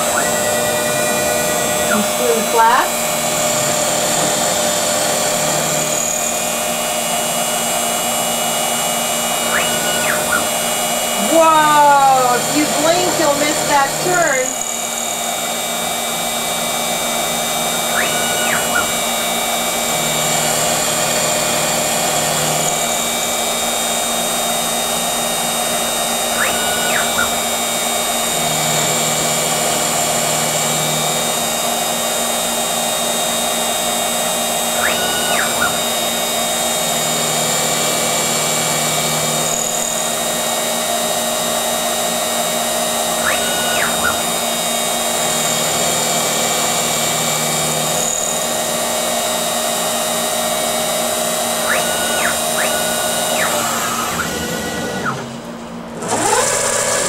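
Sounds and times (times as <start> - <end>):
milling machine hum: 0.0 - 57.0
milling machine whine: 0.0 - 57.0.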